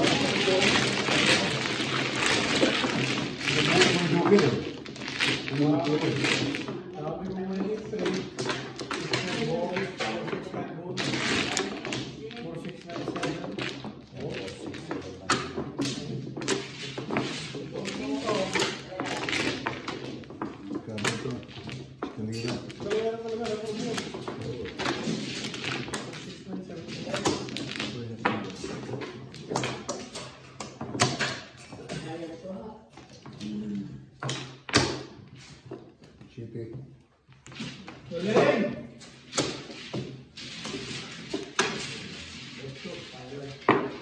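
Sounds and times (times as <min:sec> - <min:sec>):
people talking: 0:00.0 - 0:01.8, 0:03.4 - 0:04.8, 0:05.4 - 0:16.4, 0:17.0 - 0:19.7, 0:20.4 - 0:25.2, 0:26.2 - 0:29.1, 0:31.8 - 0:34.1, 0:38.1 - 0:39.0, 0:41.8 - 0:43.9
mahjong tiles clacking: 0:00.0 - 0:31.8.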